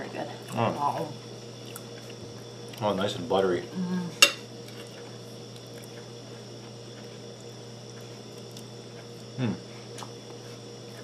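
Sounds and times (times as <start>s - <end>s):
low room hum: 0.0s - 11.0s
person humming mmm: 9.4s - 9.7s.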